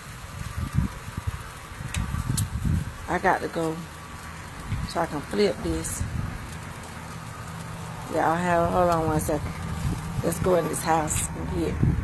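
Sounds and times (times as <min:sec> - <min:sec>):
ribs sizzling on a grill: 0:00.0 - 0:12.0.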